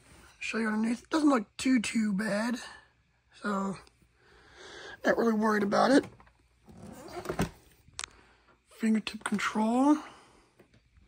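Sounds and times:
vacuum cleaner handling noise: 5.9s - 7.7s.

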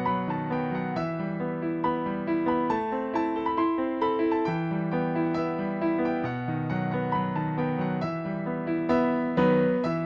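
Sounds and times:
gentle piano music: 0.0s - 10.0s.

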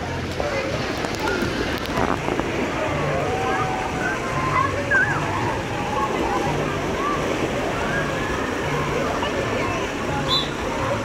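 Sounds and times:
distant voices: 0.0s - 11.0s
splashing rushing water: 0.0s - 11.0s
children calling: 2.9s - 11.0s.

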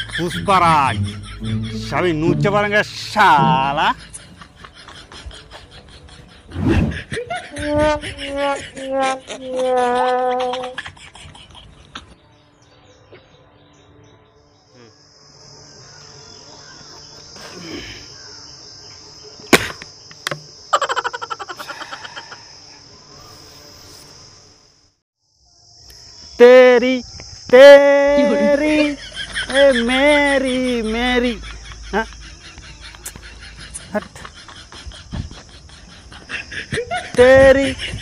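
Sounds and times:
high insect buzz: 6.4s - 11.0s, 14.5s - 38.0s.

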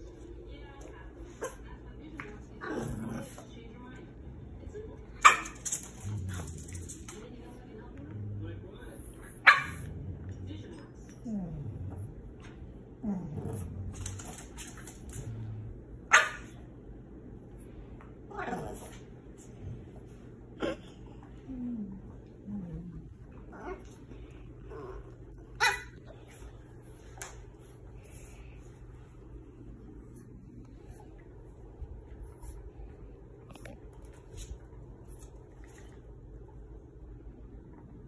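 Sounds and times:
dog bark: 5.2s - 5.6s, 9.4s - 9.9s, 16.1s - 16.6s, 25.6s - 26.0s.

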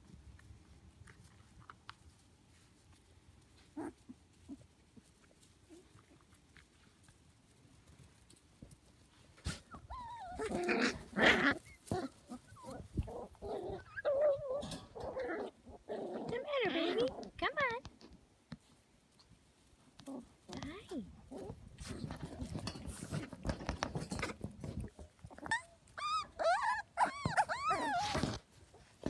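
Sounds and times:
puppies whining and growling: 9.5s - 17.3s, 21.2s - 29.0s.

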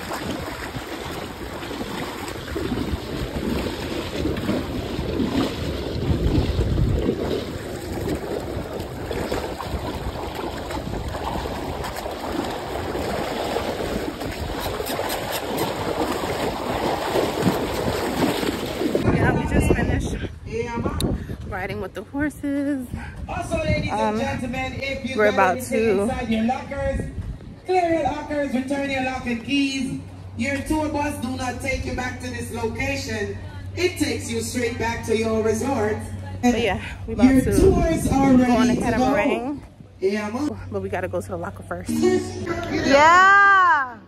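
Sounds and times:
sea water sloshing and splashing: 0.0s - 19.6s
wind gusting on microphone: 0.0s - 28.2s, 36.6s - 40.2s.

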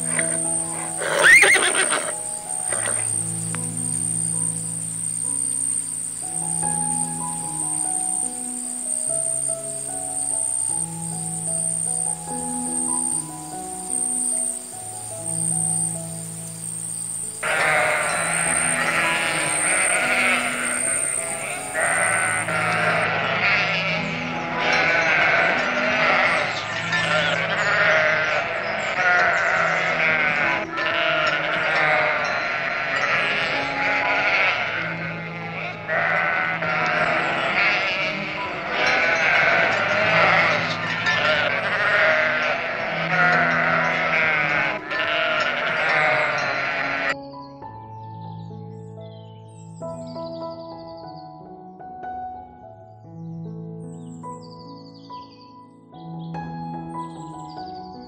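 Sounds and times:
sheep bleating: 0.0s - 3.2s, 17.4s - 47.2s
calm background music: 0.0s - 58.0s.

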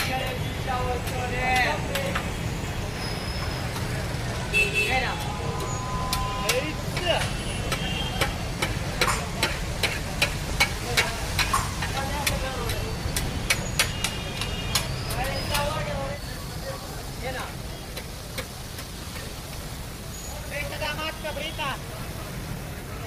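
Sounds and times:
street traffic rumble: 0.0s - 23.0s
food sizzling: 5.1s - 22.7s
metal spatula clacking on griddle: 6.1s - 15.8s, 17.9s - 19.4s.

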